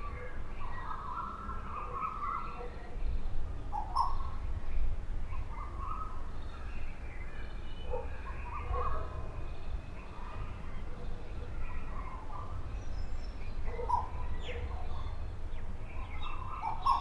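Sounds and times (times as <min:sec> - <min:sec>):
birds calling: 0:00.0 - 0:17.0.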